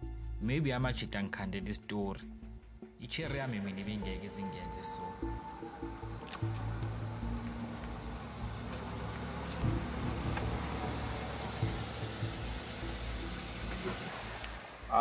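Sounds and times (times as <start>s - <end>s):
car engine passing slowly: 4.0s - 15.0s.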